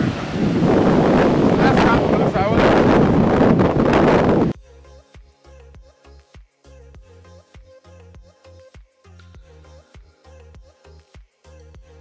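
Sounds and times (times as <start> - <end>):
breaking surf: 0.0 - 4.5
wind buffeting microphone: 0.0 - 4.6
music with steady beat: 4.5 - 12.0.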